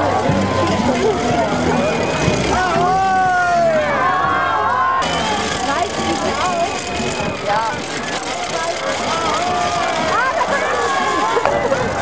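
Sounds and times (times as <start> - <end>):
crowd calling and shouting: 0.0 - 12.0.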